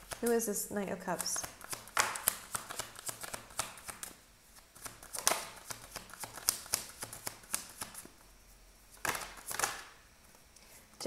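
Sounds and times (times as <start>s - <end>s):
cards being shuffled: 0.0s - 0.4s, 1.1s - 8.2s, 8.9s - 9.9s.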